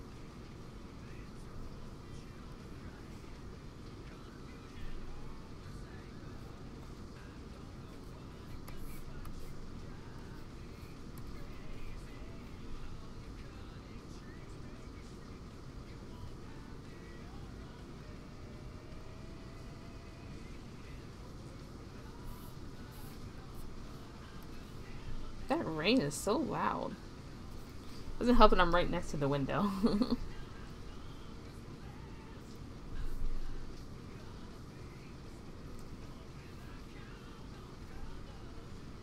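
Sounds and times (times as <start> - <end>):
faint background music: 0.0 - 39.0.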